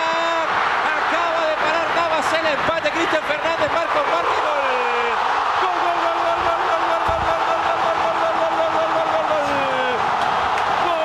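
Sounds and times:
commentator shouting: 0.0 - 10.1
stadium crowd noise: 0.0 - 11.0.

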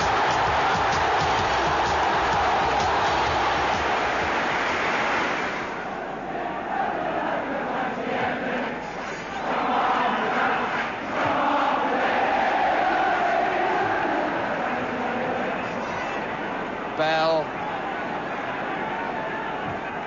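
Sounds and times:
crowd chanting and shouting: 0.0 - 20.0.

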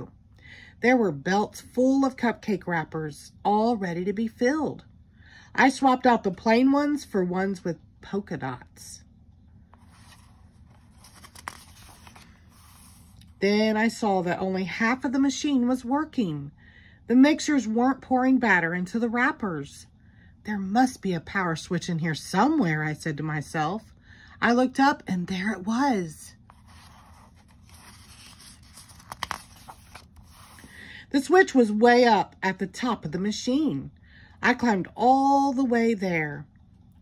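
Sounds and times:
paper rustling: 9.8 - 13.3, 26.4 - 30.8.

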